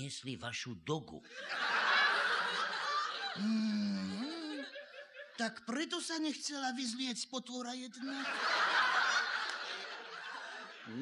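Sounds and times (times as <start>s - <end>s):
audience laughing: 1.4s - 3.4s, 8.0s - 11.0s.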